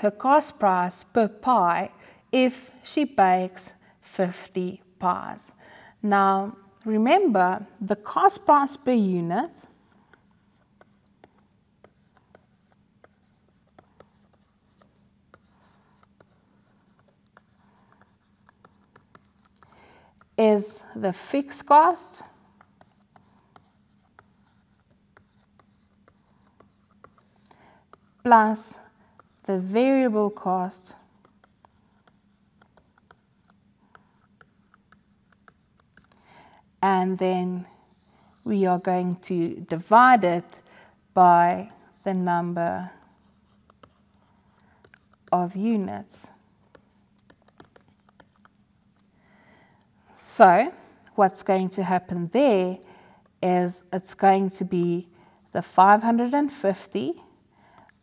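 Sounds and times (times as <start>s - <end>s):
low steady hum: 0.0s - 58.0s
stylus tapping and scratching: 9.7s - 20.7s, 21.5s - 36.6s, 41.5s - 49.1s
pen writing ticks: 10.0s - 20.4s, 22.1s - 28.2s, 30.8s - 36.2s, 41.6s - 45.4s, 46.6s - 49.1s.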